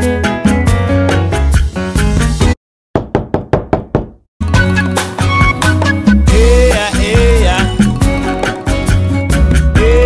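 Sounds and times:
background music: 0.0s - 2.6s, 4.4s - 10.0s
knuckles knocking on wooden door: 3.0s - 4.2s.

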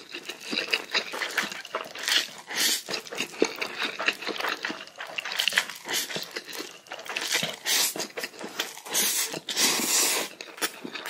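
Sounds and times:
wet chewing smacks: 0.0s - 11.0s
man slurping noodles: 2.2s - 3.0s, 7.4s - 10.4s.

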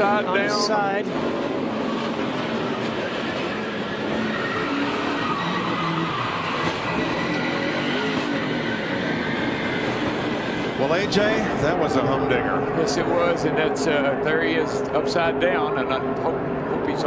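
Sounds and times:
cars skidding: 0.0s - 14.2s
race car engines running: 0.0s - 17.0s
overturned car sliding on track: 1.1s - 11.5s.

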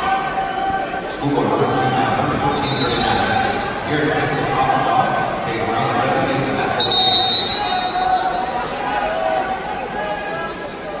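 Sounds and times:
voices echoing in gymnasium: 0.0s - 11.0s.

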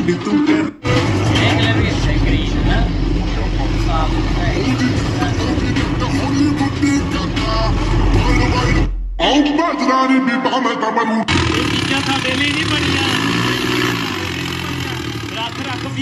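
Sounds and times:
tractor engine running: 0.8s - 8.8s, 11.3s - 16.0s.

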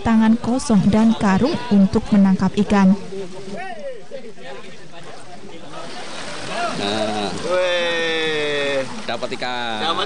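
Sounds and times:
river water over rocks: 0.0s - 10.0s.

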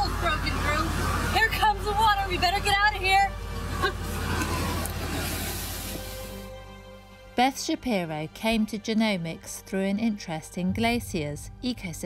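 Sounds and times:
meltwater rushing and pouring: 3.5s - 6.6s
low rumble: 10.5s - 12.0s.

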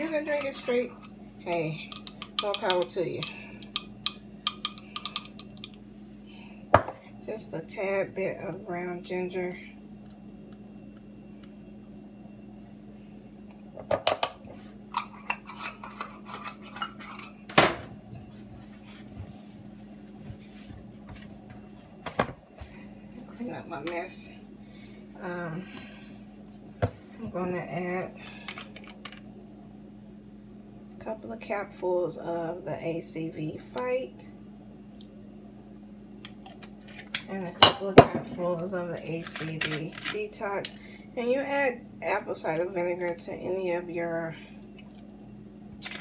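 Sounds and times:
steady low hum: 0.0s - 46.0s
utensils clinking on countertop: 1.9s - 5.8s.

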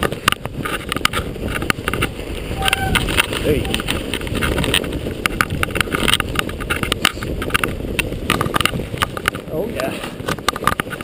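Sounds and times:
low rumble of tyres: 0.0s - 11.0s
mountain bike knocks and rattles: 0.0s - 11.0s
wind on camera: 0.0s - 11.0s.

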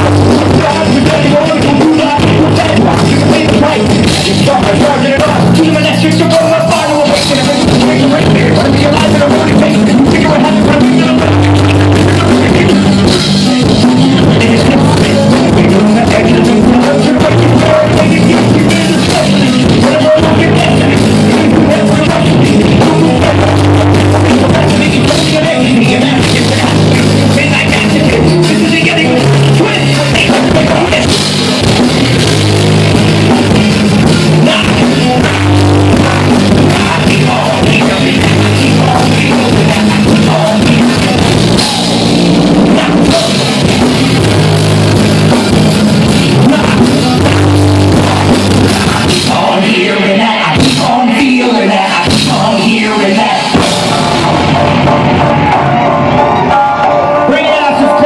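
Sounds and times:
electric bass guitar: 0.0s - 51.1s, 51.9s - 58.0s
drum kit: 0.0s - 58.0s
vocalist on microphone: 0.0s - 58.0s.

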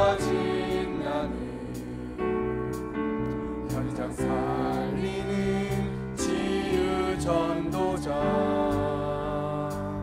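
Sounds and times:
congregation singing: 0.0s - 2.6s, 3.7s - 10.0s
keyboard accompaniment: 0.0s - 10.0s.

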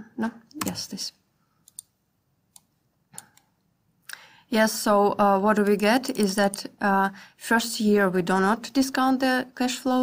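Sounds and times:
computer mouse clicks: 1.6s - 1.9s, 2.5s - 3.7s, 6.2s - 6.7s.

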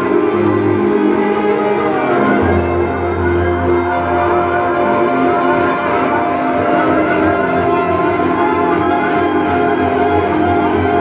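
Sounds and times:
sustained electric guitar: 0.0s - 11.0s.

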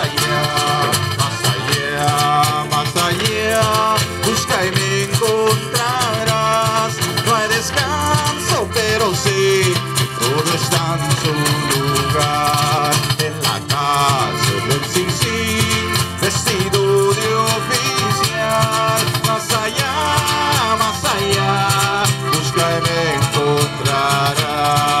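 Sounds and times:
accordion: 0.0s - 25.0s
small strummed string instrument: 0.0s - 25.0s
strummed acoustic guitar: 0.0s - 25.0s.

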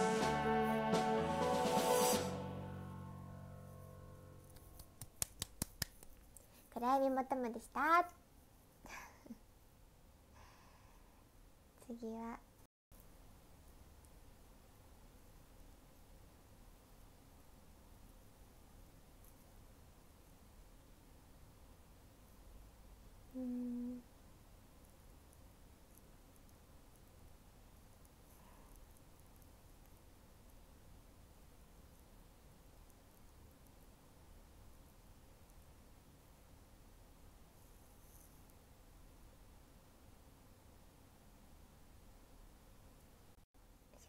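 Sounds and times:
karaoke backing track chord: 0.0s - 4.4s
steady tone: 0.0s - 5.0s
young woman's voice: 6.7s - 8.2s, 11.8s - 12.4s, 23.4s - 24.0s.

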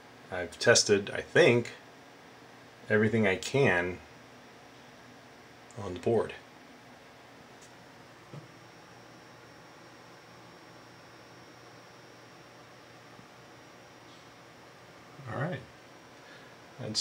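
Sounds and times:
high steady whine: 0.0s - 17.0s
steady low hiss: 0.0s - 17.0s.

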